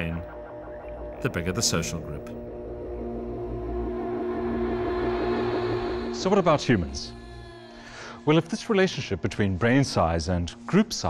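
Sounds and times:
held drone chord: 0:00.0 - 0:08.3.

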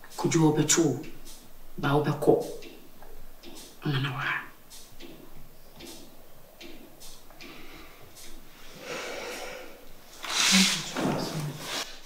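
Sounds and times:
person breathing: 0:07.4 - 0:10.8.

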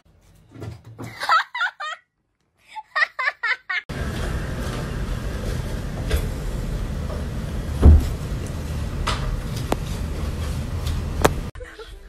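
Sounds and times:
person laughing: 0:01.1 - 0:02.0, 0:02.7 - 0:03.9.

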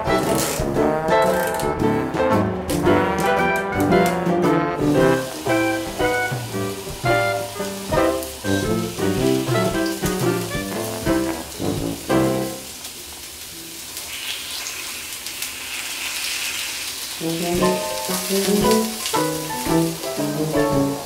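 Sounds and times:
instrumental background music: 0:00.0 - 0:12.6, 0:17.2 - 0:21.0
food sizzling on a grill: 0:04.8 - 0:21.0.

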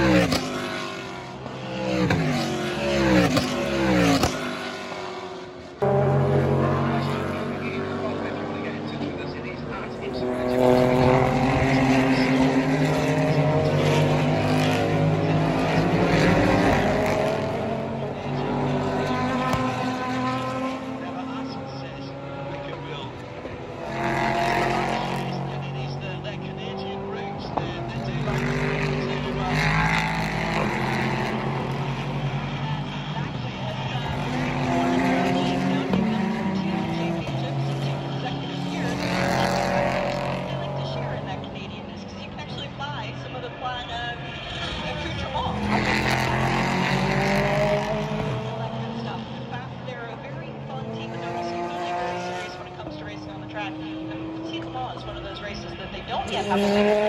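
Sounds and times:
race car engines passing: 0:00.0 - 0:57.0.

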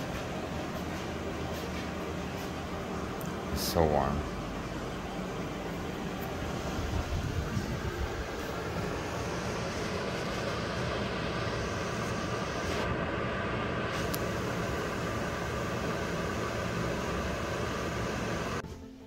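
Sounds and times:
faint hum: 0:00.0 - 0:19.0
wood stove fire rushing: 0:04.8 - 0:18.6.

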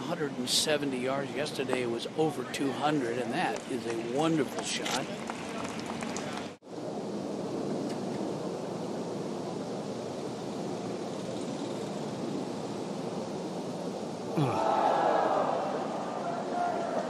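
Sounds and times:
wind-like hiss: 0:00.0 - 0:17.0.

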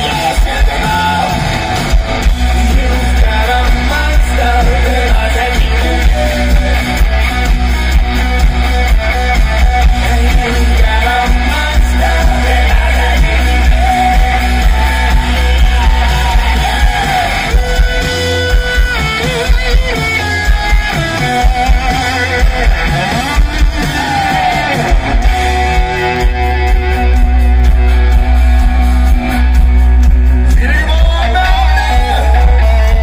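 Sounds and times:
person singing: 0:00.0 - 0:07.1, 0:09.6 - 0:18.1, 0:30.5 - 0:33.0
rock band playing live: 0:00.0 - 0:33.0.

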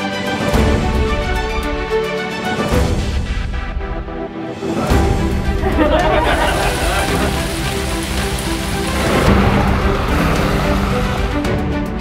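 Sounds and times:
background music of held notes: 0:00.0 - 0:12.0
heavy rain falling: 0:04.8 - 0:12.0.

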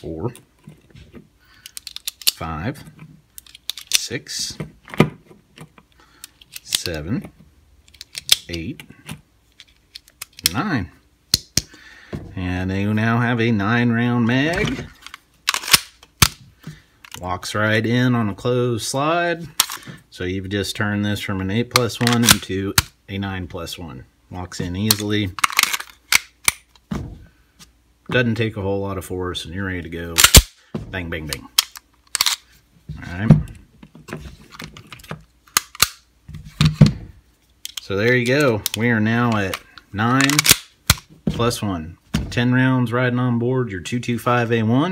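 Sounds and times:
pistol metallic clicks: 0:35.5 - 0:36.0.

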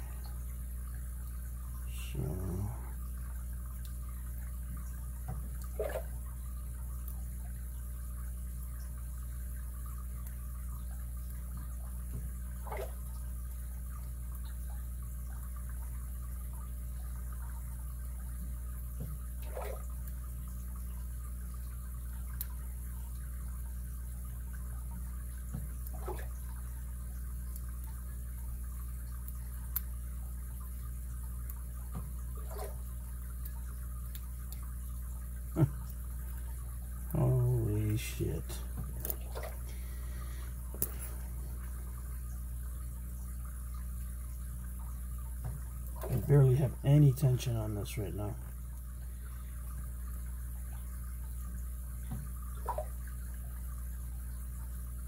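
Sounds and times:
steady hum and hiss: 0:00.0 - 0:55.0.

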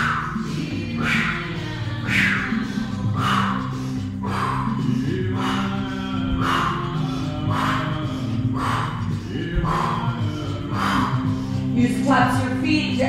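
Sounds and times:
forceful breaths out: 0:00.0 - 0:11.8
song with low drone: 0:00.0 - 0:13.0.

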